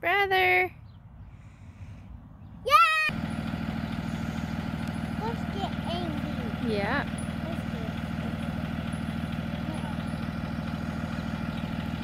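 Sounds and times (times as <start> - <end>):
bus engine idling: 2.7 - 12.0.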